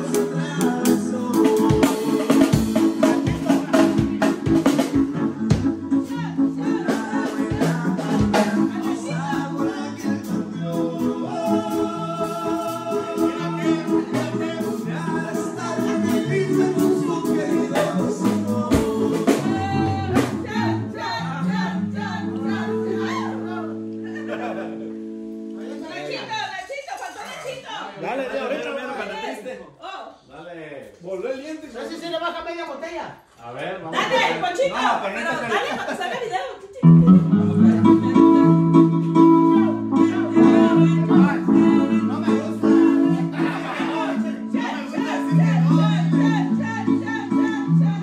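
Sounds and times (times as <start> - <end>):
bass drum beat: 0.0 - 23.4
live band playing: 0.0 - 26.7, 36.8 - 48.0
men shouting and laughing: 18.8 - 25.1, 34.0 - 36.6, 40.7 - 46.8.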